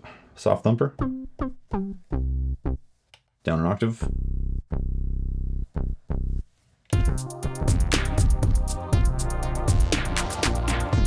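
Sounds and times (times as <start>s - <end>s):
synth bass notes: 1.0s - 2.8s, 4.0s - 6.4s, 7.0s - 11.0s.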